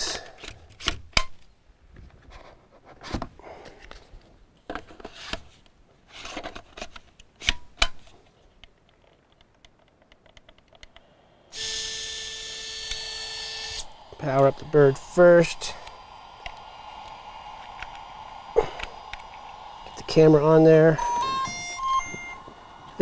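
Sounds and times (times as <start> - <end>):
drone motor hum with whine: 11.5 - 23.0
sharp clicks: 15.8 - 20.0.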